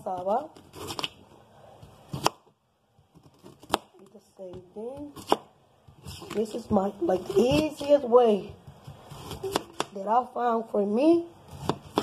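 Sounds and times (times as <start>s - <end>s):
knife scraping peel: 0.5s - 1.2s, 8.9s - 9.9s.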